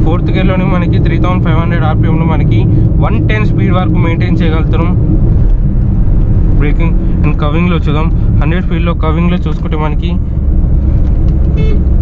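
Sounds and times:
man talking: 0:00.0 - 0:05.0, 0:06.6 - 0:10.2
car cabin road noise: 0:00.0 - 0:12.0.

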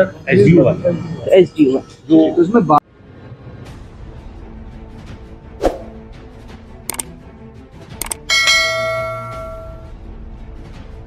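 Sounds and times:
faint background music: 0:00.0 - 0:11.0
quick clicks: 0:08.0 - 0:08.3
bright bell chime: 0:08.0 - 0:09.9.

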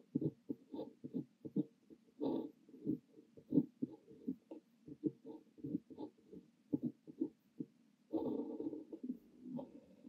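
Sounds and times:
fountain pen scratching on paper: 0:00.0 - 0:09.8.

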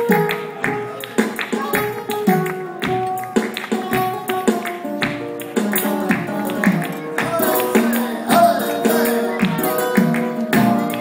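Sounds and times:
acoustic guitar playing: 0:00.0 - 0:11.0
dancer's shoes striking stage: 0:00.0 - 0:11.0.

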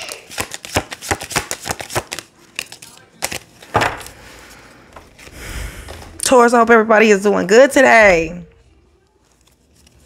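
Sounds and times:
cards being shuffled: 0:00.0 - 0:04.2, 0:09.2 - 0:10.0
soft rustle of cards: 0:08.6 - 0:10.0.

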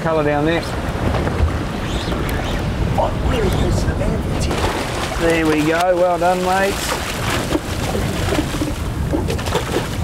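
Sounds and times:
wind on microphone: 0:00.0 - 0:10.0
water washing along boat: 0:00.2 - 0:10.0.

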